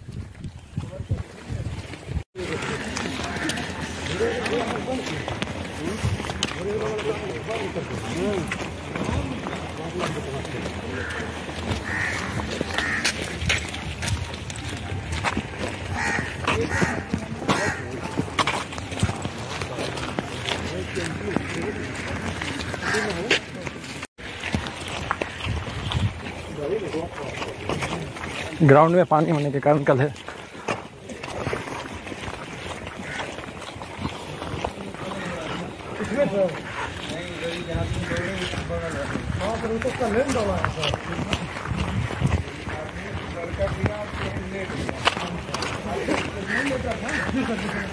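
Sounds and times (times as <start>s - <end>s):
footsteps on gravel: 0.0s - 47.9s
men talking in background: 0.7s - 47.9s.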